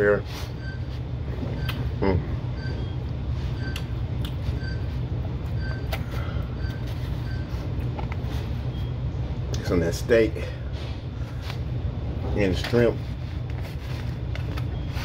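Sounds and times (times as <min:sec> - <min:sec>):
low machine hum: 0:00.0 - 0:15.0
person murmuring mm: 0:01.9 - 0:02.4.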